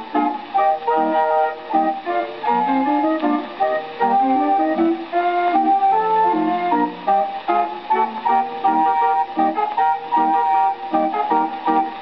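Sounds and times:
street organ playing ragtime: 0.0s - 12.0s.

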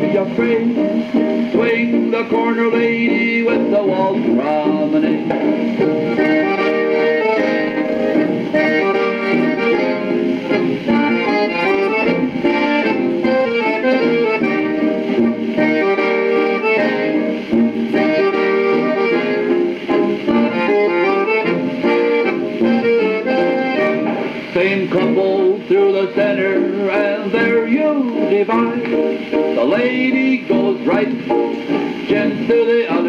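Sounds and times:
old dance band playing a waltz: 0.0s - 33.0s.

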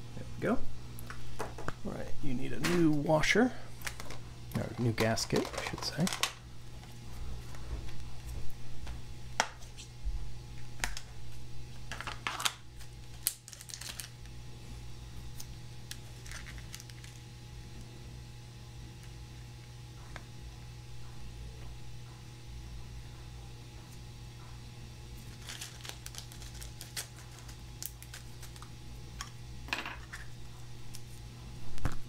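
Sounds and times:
steady low hum: 0.0s - 32.0s.

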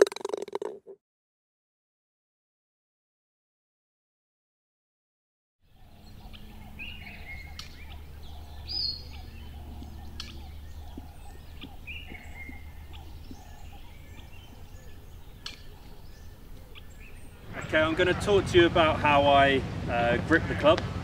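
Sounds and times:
bird chirps: 5.7s - 17.7s.

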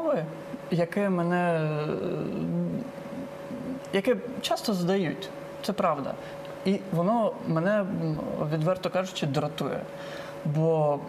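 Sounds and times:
woman speaking hesitantly: 0.0s - 3.9s.

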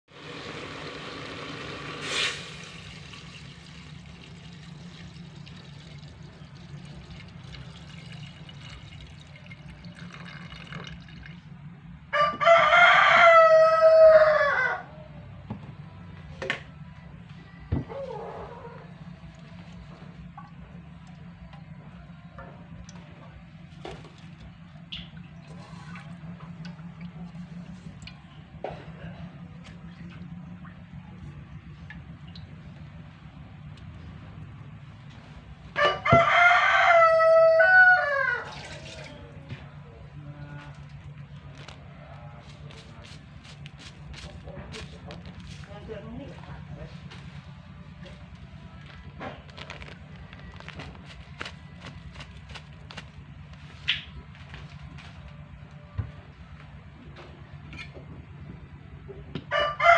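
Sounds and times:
low steady hum: 0.1s - 59.9s
rooster crowing: 12.1s - 15.1s, 35.7s - 38.8s, 59.4s - 59.9s.

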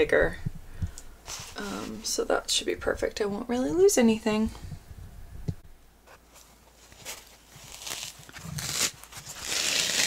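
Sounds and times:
wool ripping off foam pad: 7.1s - 10.0s.

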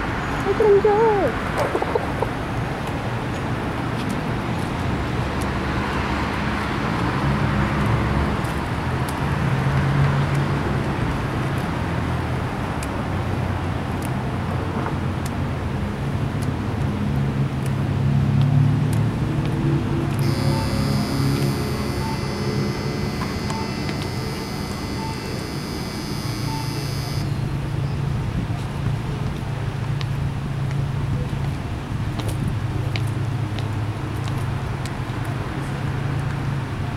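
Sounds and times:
street traffic hum: 0.0s - 36.9s
high-pitched whine with pips: 20.2s - 27.5s.

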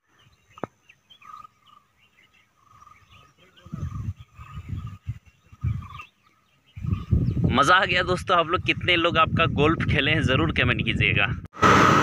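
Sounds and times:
birds chirping: 0.0s - 9.7s.

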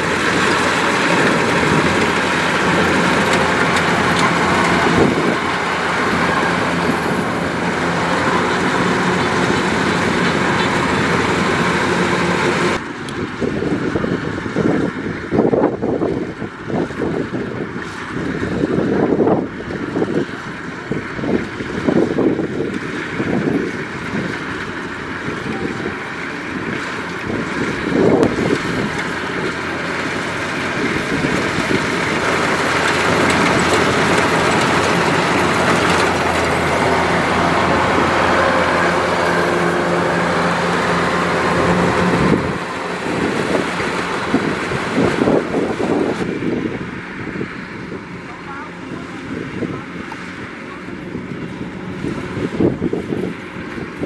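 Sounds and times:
combine harvester engine drone: 0.0s - 54.0s.

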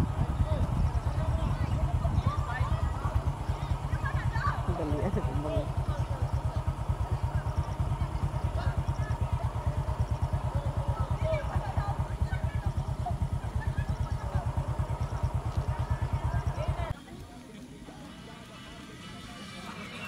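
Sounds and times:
engine idling: 0.0s - 20.0s
faint voices: 0.0s - 20.0s.

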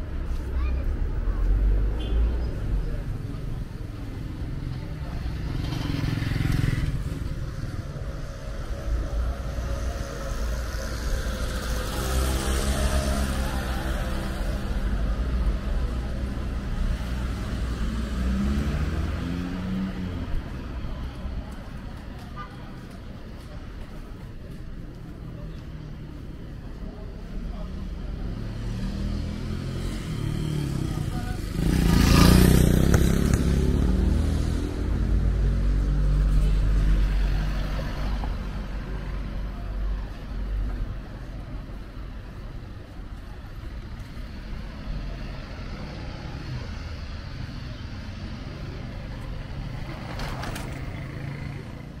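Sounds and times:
street traffic noise: 0.0s - 52.0s.

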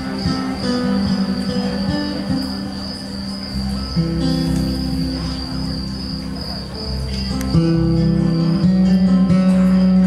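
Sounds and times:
amplified guitar ringing notes: 0.0s - 10.0s.

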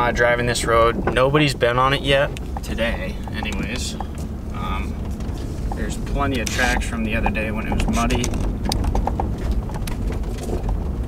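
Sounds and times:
sharp clicks and rattles: 0.0s - 11.0s
truck engine and tyre rumble: 0.0s - 11.0s.

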